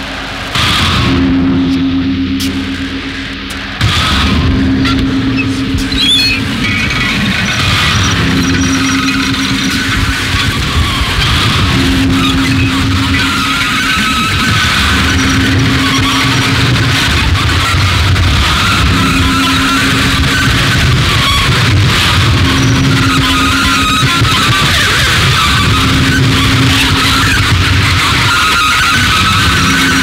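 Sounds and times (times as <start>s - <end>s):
distorted electronic noise music: 0.0s - 30.0s
low hum: 0.0s - 30.0s.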